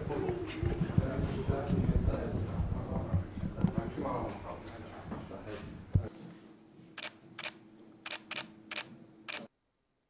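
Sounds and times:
camera shutters clicking: 7.0 - 9.5.

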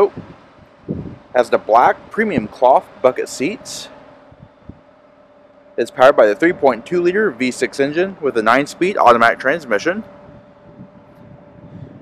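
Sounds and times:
thin constant tone: 0.0 - 11.8
faint mechanical hum: 0.0 - 12.0
low rumble: 9.9 - 12.0.

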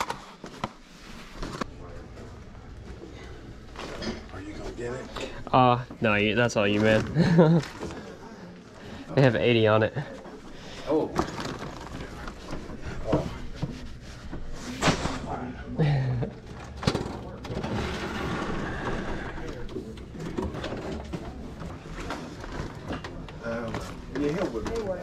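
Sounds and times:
items being rummaged and knocked: 11.0 - 15.3, 16.2 - 25.0.

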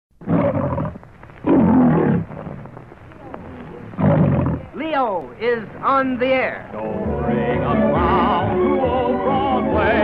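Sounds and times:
lion roaring: 0.2 - 2.7, 3.8 - 4.7.

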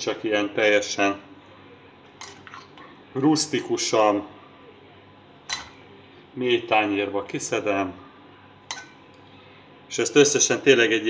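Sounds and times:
metal spoon clinking on plate: 5.5 - 5.8, 8.7 - 9.0.

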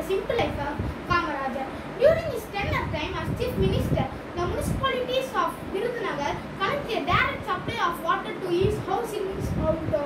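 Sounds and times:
boy speaking: 0.0 - 10.0.

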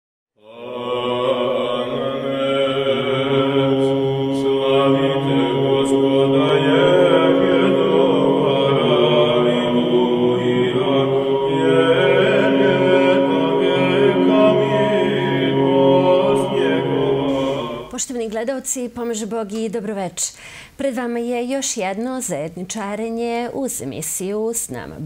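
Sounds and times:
choir chanting: 0.4 - 18.0
low drone: 0.4 - 18.0.

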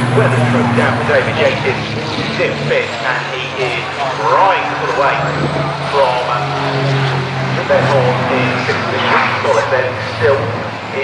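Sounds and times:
distant diesel truck engines: 0.0 - 11.0
public address commentary: 0.0 - 11.0.

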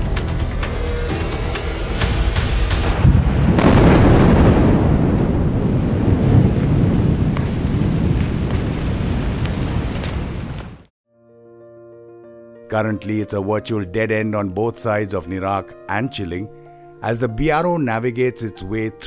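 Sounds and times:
explosive blast in rock: 2.0 - 7.0
rumble of falling rock and debris: 3.0 - 10.9.

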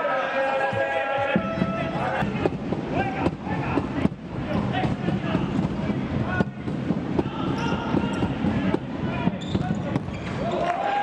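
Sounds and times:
shoes squeaking on floor: 0.7 - 2.5, 7.2 - 10.6.

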